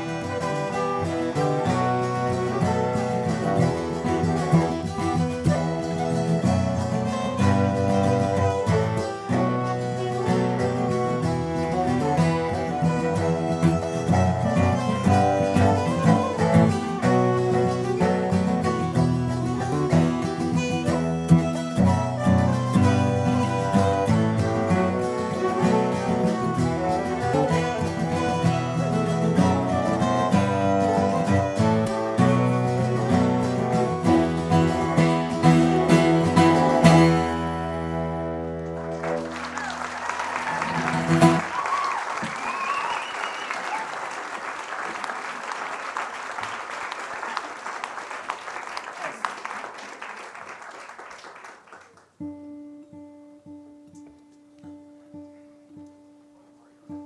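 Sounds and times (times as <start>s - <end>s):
bowed string melody: 0.0s - 39.4s
cello accompaniment: 0.0s - 39.5s, 40.6s - 41.5s
acoustic guitar: 0.0s - 44.5s, 51.5s - 57.0s.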